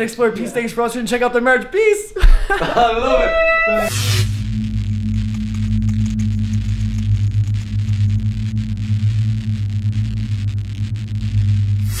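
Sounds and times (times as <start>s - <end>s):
low electronic drone: 2.3s - 12.0s
hiss: 11.8s - 12.0s.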